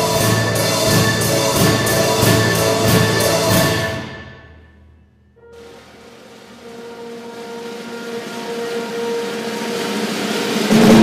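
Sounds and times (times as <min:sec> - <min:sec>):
cymbal-like percussion roll: 0:05.4 - 0:11.0
held orchestral chord: 0:06.5 - 0:11.0
loud percussion stroke: 0:10.1 - 0:11.0.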